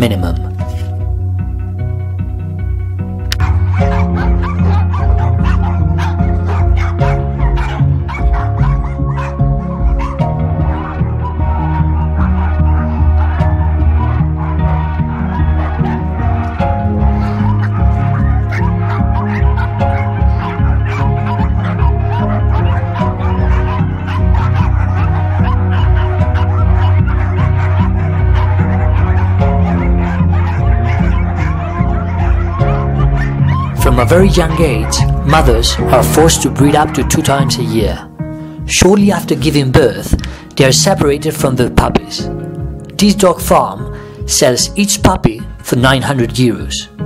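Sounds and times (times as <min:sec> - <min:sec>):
background music with sustained tones: 0:00.0 - 0:47.0
small dogs barking: 0:03.2 - 0:39.2.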